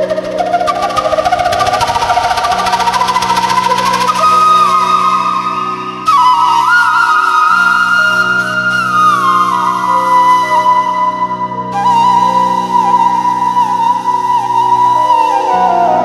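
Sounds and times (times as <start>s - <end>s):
steady low drone: 0.0s - 7.5s
bamboo flute melody: 0.0s - 16.0s.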